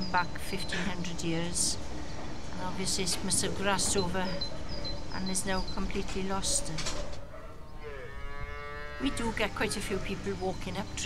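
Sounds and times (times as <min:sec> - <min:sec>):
calf bawling: 0:06.5 - 0:10.4.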